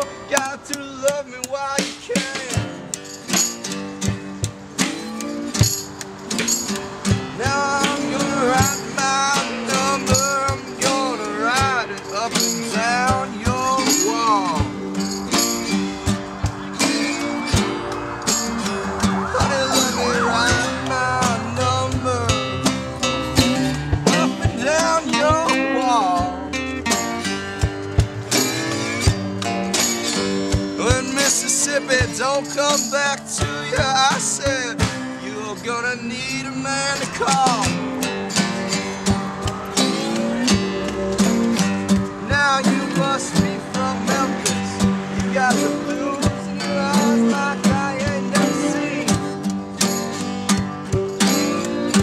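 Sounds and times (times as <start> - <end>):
strummed acoustic guitars: 0.0 - 52.0
sliding wavering lead melody: 13.9 - 26.8.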